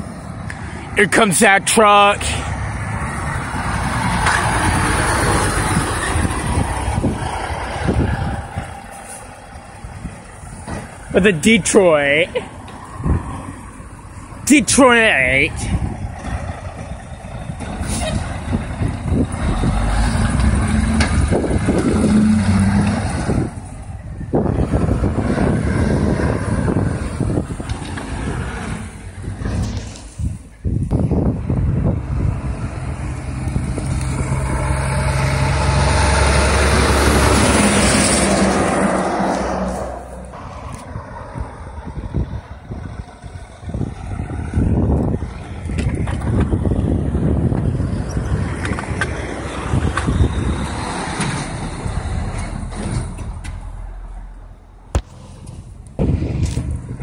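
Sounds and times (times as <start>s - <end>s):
diesel truck engine pulling away: 0.0s - 57.0s
trucks and traffic passing: 0.0s - 57.0s.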